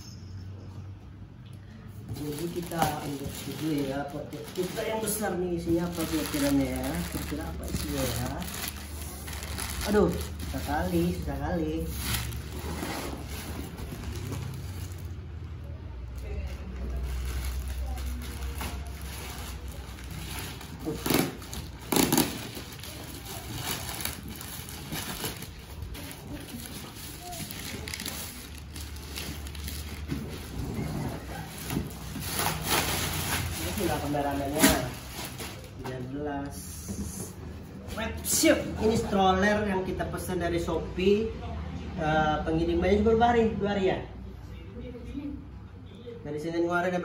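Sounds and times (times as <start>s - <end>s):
plastic bag rustling: 2.0s - 15.4s, 16.5s - 36.0s.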